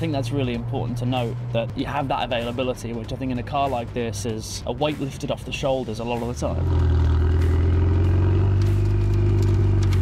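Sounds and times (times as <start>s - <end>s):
tyre and road noise: 0.0s - 10.0s
car engine at low revs: 6.5s - 10.0s.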